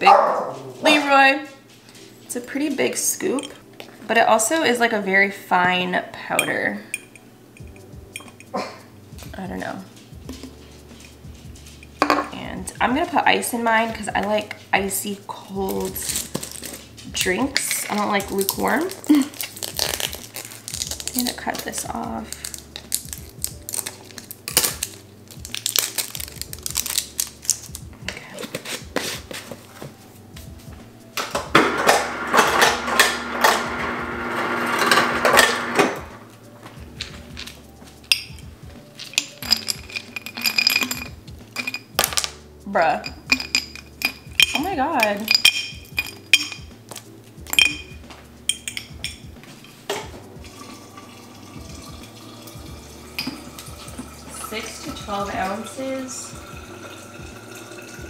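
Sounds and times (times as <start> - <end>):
straw clinking against glass jar: 6.4 - 8.7, 38.1 - 42.3, 43.0 - 50.6
scissors cutting plastic package: 18.2 - 29.2
water running into jar: 50.4 - 58.0.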